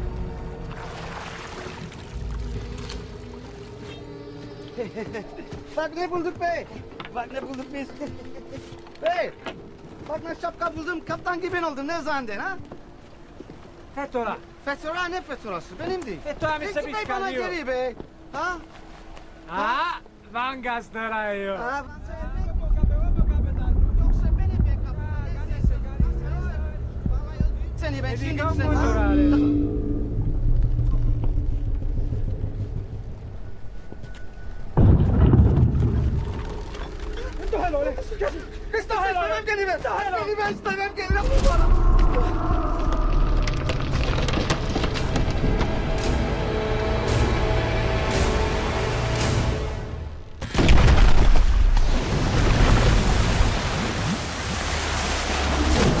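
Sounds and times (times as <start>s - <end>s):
film score: 0.0s - 56.0s
voices: 19.4s - 29.8s
low soundtrack rumble: 21.7s - 39.0s
loud deep boom: 34.8s - 36.5s
sudden loud crash: 34.8s - 36.5s.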